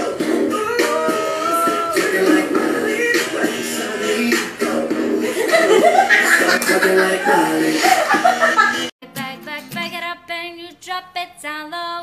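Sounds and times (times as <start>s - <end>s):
person chuckling: 5.3s - 8.9s
person speaking: 6.4s - 7.7s.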